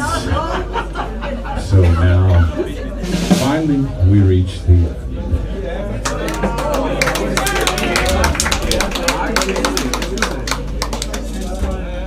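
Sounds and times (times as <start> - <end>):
audience clapping: 6.0 - 11.6.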